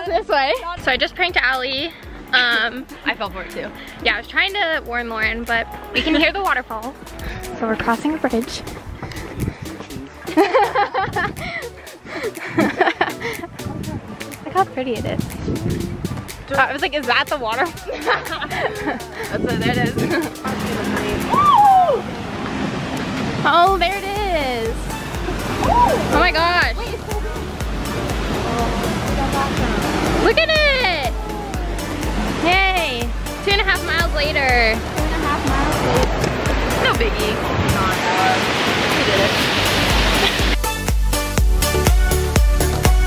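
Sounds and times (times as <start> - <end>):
background music with steady beat: 0.0 - 38.2, 38.9 - 43.0
wind on microphone: 8.4 - 10.2, 10.9 - 11.6, 12.6 - 16.8, 18.3 - 27.1, 34.0 - 40.6
waterfall and stream rushing: 13.5 - 43.0.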